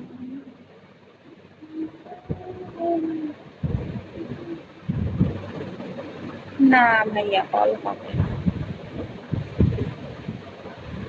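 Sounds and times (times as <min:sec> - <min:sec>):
low cooing tone: 0:00.0 - 0:06.6
low thuds: 0:03.5 - 0:06.5, 0:08.1 - 0:11.0.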